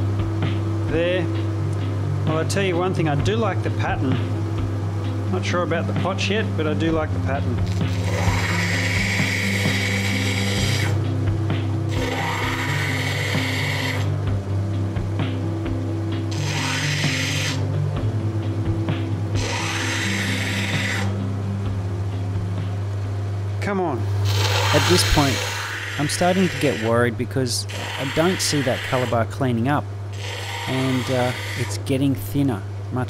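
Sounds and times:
grinding machine motor hum: 0.0s - 23.2s, 24.1s - 32.2s
stone grinding on wet wheel: 7.7s - 11.0s, 11.9s - 14.1s, 16.3s - 17.6s, 19.4s - 21.1s, 24.3s - 27.0s, 27.7s - 29.2s, 30.2s - 31.8s.

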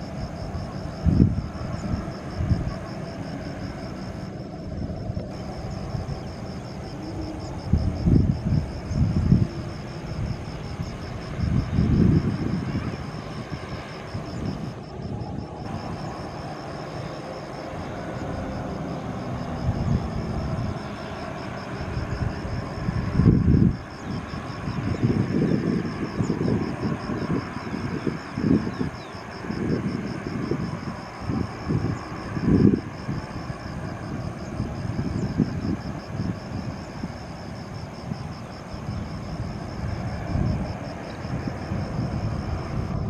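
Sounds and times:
jet engines at low power: 0.0s - 43.0s
wind buffeting microphone: 0.0s - 43.0s.

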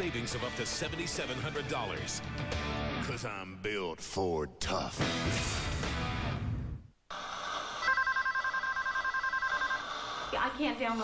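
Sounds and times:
electronic telephone ringer trilling: 7.8s - 9.9s.

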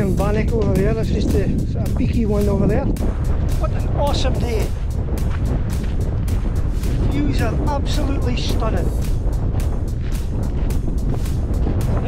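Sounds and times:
gusty rustles: 0.0s - 12.0s
wind buffeting microphone: 0.0s - 12.0s.

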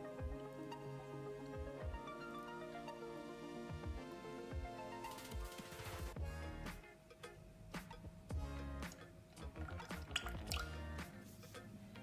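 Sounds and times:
background music: 0.0s - 12.0s
liquid pouring and dripping into pan: 9.4s - 10.9s.

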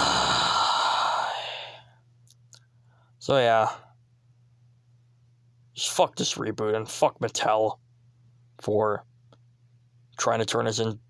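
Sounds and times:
heavy sigh: 0.0s - 1.9s.

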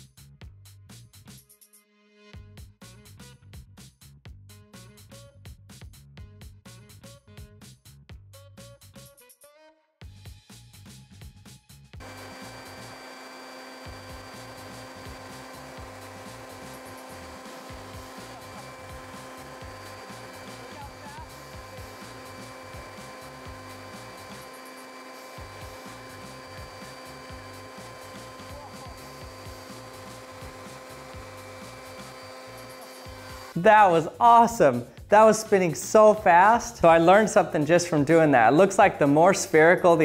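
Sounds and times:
electric leaf blower running: 12.0s - 34.4s.

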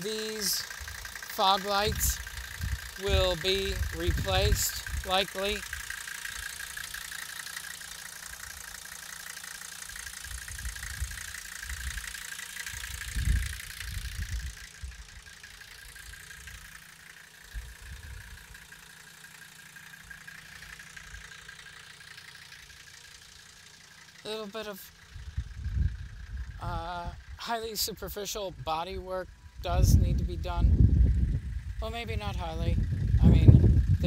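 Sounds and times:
diesel engine idling: 0.0s - 34.0s.

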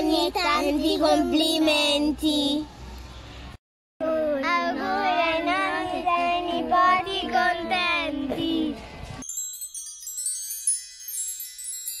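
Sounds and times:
high twinkling chimes: 9.2s - 12.0s.

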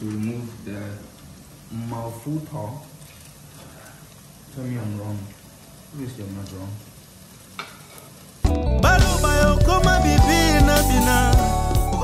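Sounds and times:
mince sizzling in oil: 0.1s - 12.0s
loud music with singing: 8.6s - 12.0s.

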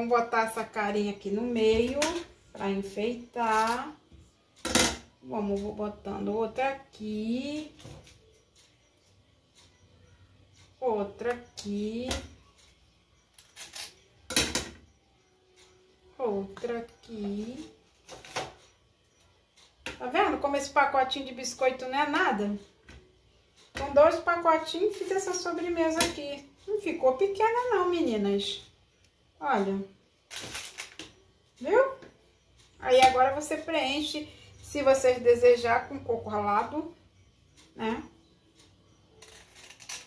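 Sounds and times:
plastic food packaging crinkling: 30.3s - 31.0s.

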